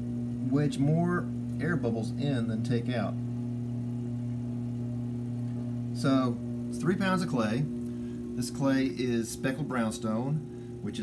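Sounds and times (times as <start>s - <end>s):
potter's wheel motor humming: 0.0s - 11.0s.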